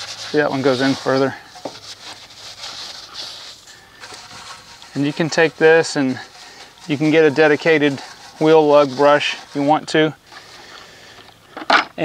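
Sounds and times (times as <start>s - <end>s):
brush scrubbing metal wheel: 0.0s - 11.2s.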